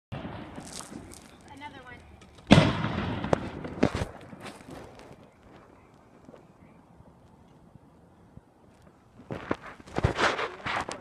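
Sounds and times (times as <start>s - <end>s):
fireworks bang: 0.1s - 1.2s, 2.5s - 4.9s
fireworks cracking: 0.1s - 6.4s.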